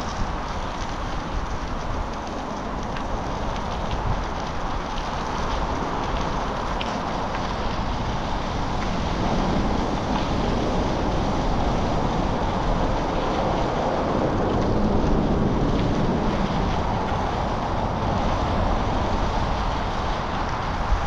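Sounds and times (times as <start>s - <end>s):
wind rushing over microphone: 0.0s - 21.0s.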